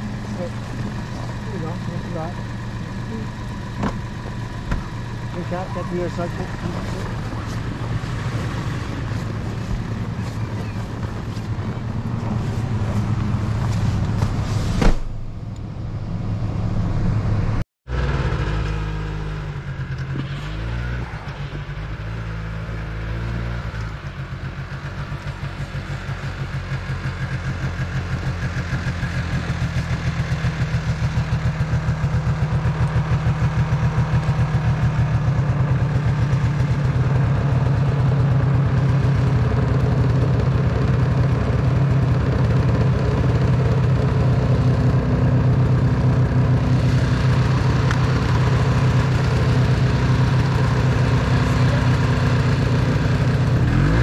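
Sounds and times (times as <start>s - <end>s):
snowmobile engine idling: 0.0s - 14.7s, 16.8s - 54.0s.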